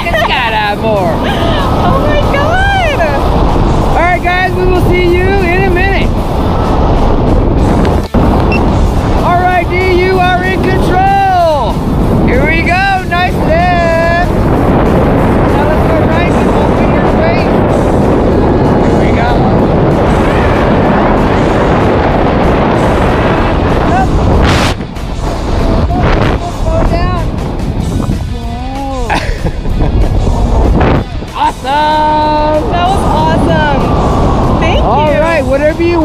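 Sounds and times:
music: 0:00.0 - 0:36.0
wind roaring over microphone: 0:00.0 - 0:36.0.

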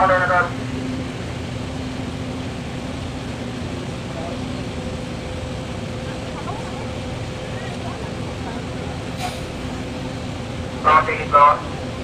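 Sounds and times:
ferry engines humming: 0:00.0 - 0:12.0.

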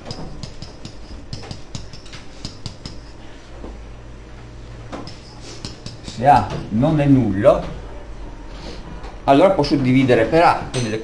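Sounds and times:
stylus tapping on whiteboard: 0:00.0 - 0:03.2, 0:04.9 - 0:06.7
steady low hum: 0:00.0 - 0:11.0.

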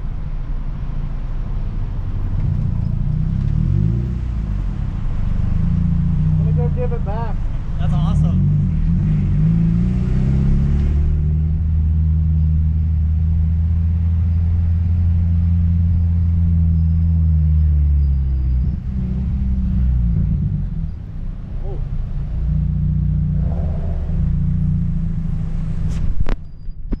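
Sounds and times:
car engine running at low revs: 0:00.0 - 0:27.0.

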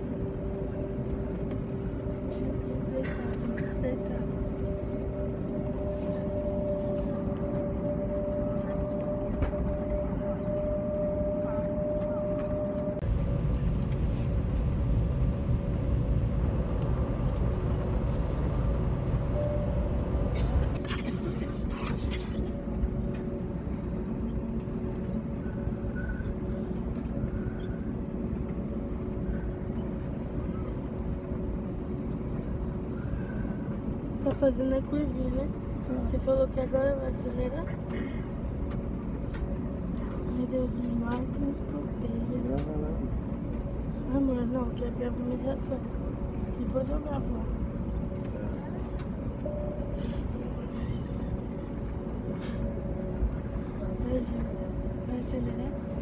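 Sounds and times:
aircraft engine rumble: 0:00.0 - 0:56.0
engine whine: 0:00.0 - 0:56.0.

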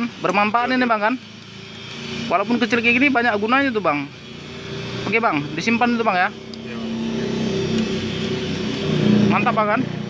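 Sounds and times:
engine humming steadily: 0:00.0 - 0:10.0.

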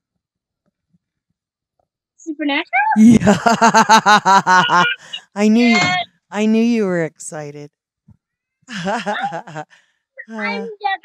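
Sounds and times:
person laughing: 0:03.0 - 0:06.0, 0:08.7 - 0:09.6.

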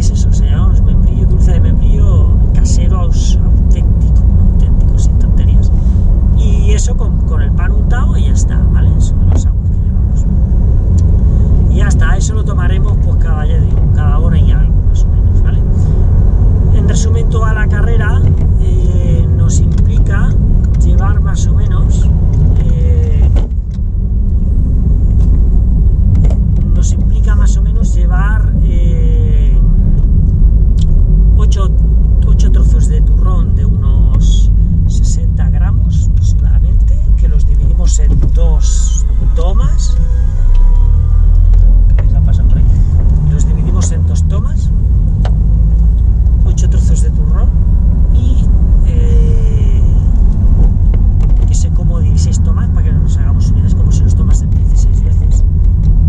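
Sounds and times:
car engine and tyre rumble: 0:00.0 - 0:56.0.

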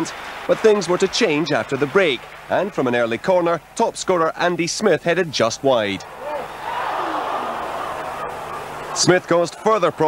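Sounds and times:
stadium crowd reacting: 0:00.0 - 0:03.2, 0:06.0 - 0:10.0.

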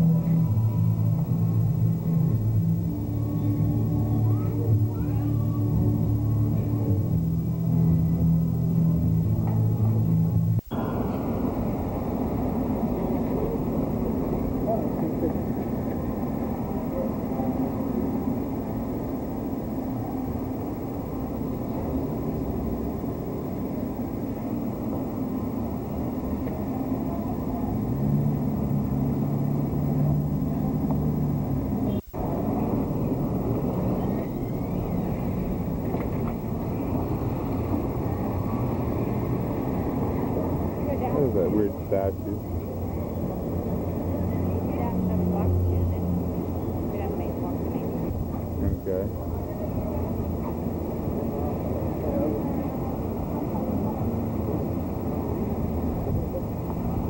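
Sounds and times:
distant voices: 0:00.0 - 0:57.0
low steady tone: 0:00.0 - 0:57.0
town traffic: 0:00.0 - 0:57.0.

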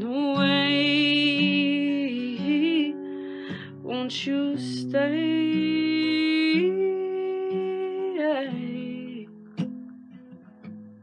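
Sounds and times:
acoustic guitar: 0:00.0 - 0:11.0.

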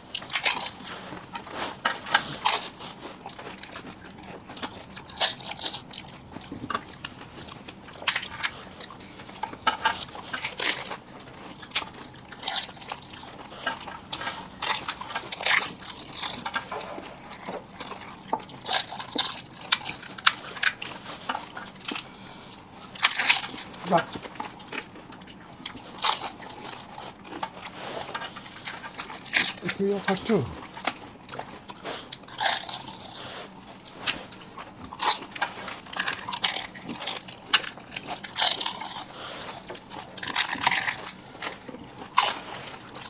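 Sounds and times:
crisp shells crunching: 0:09.5 - 0:43.0.

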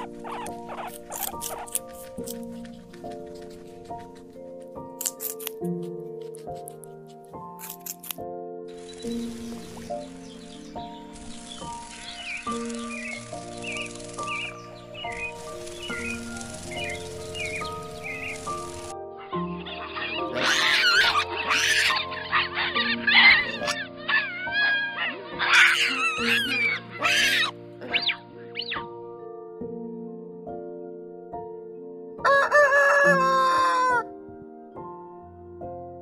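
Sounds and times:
baboons calling: 0:00.0 - 0:02.2, 0:16.0 - 0:28.2
background music: 0:00.0 - 0:36.0.

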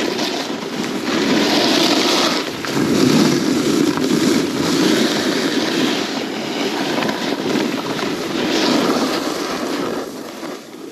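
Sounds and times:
ski edges scraping snow: 0:00.0 - 0:10.9
wind rushing over microphone: 0:00.0 - 0:10.9.

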